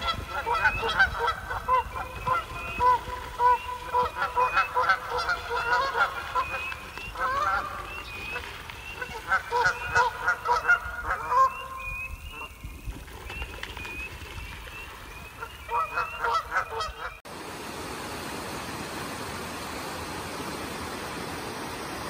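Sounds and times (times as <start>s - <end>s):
geese honking: 0.0s - 12.5s, 15.2s - 17.2s.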